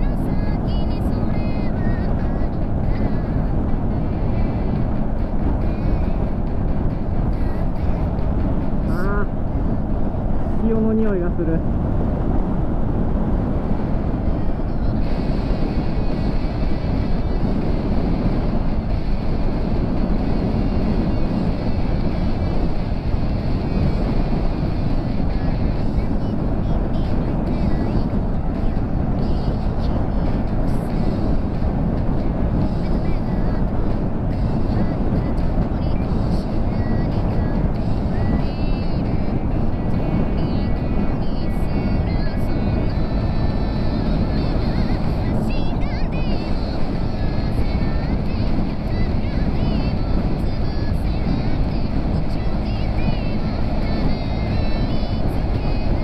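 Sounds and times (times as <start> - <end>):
wind rushing on microphone: 0.0 - 56.0.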